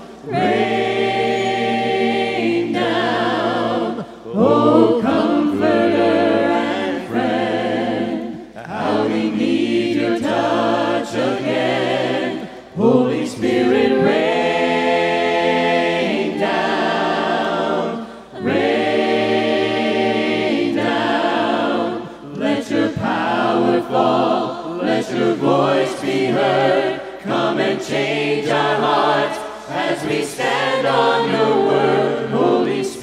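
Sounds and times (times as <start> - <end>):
congregation singing a hymn: 0.0 - 33.0.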